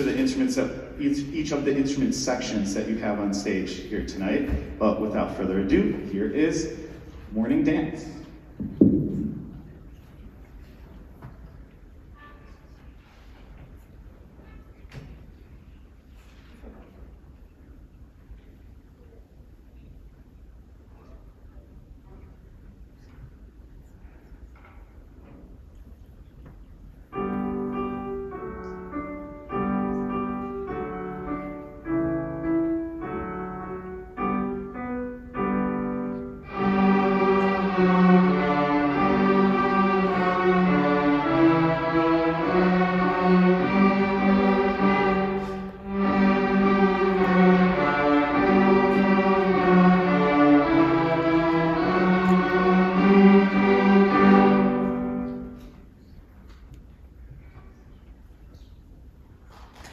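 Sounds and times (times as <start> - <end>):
string orchestra with piano: 0.0 - 59.9.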